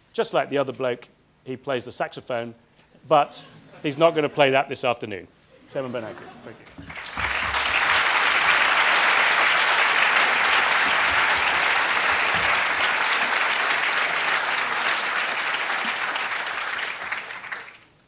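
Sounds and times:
audience applauding: 6.8s - 18.0s.

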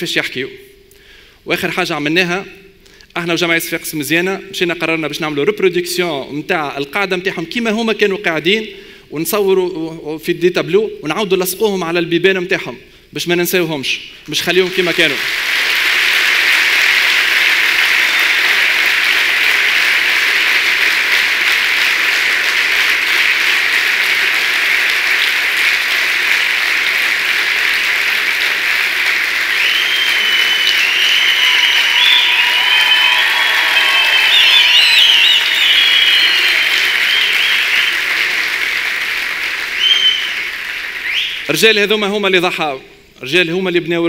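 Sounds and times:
audience applauding: 14.5s - 41.5s
shrill wavering high-pitched calls: 29.6s - 37.9s.

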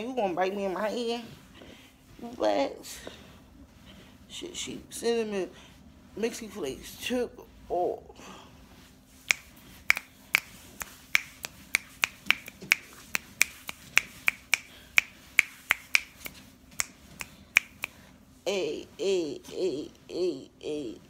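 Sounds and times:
fingers snapping: 9.3s - 18.0s.

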